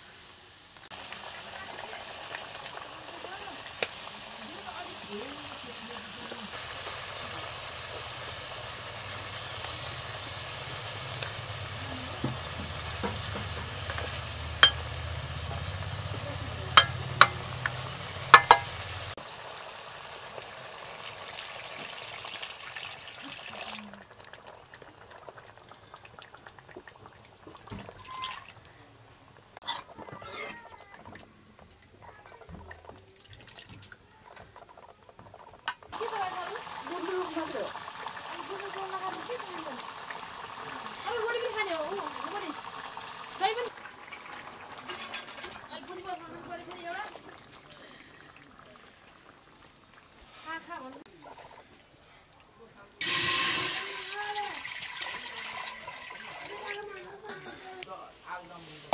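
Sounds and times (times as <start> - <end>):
water pouring into hot curry: 0.0 - 29.7, 30.4 - 52.1, 53.0 - 58.1
curry sizzling and bubbling: 0.0 - 58.9
stirring sounds: 0.9 - 19.3, 20.3 - 58.9.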